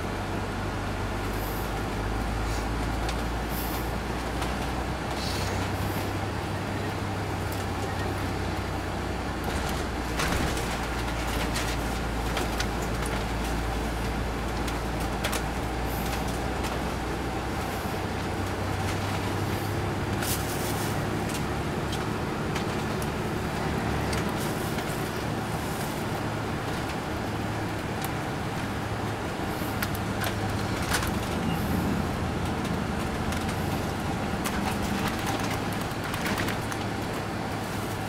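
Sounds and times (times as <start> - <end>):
diesel engine hum: 0.0 - 38.0
road noise: 0.0 - 38.0
interior clicks and rattles: 9.4 - 38.0.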